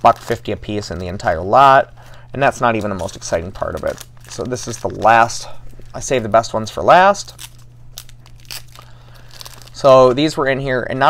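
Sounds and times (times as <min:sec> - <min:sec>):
plastic sleeve crinkling: 0:00.0 - 0:11.0.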